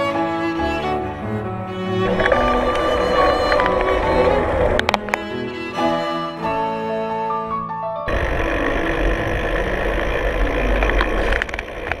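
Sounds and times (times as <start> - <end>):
drone propellers whirring: 1.8 - 6.1, 8.1 - 12.0.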